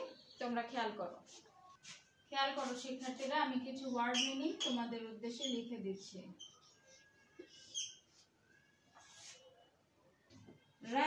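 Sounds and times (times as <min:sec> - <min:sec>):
marker squeaking on whiteboard: 0:03.7 - 0:09.7
scratchy marker stroke: 0:09.0 - 0:09.6.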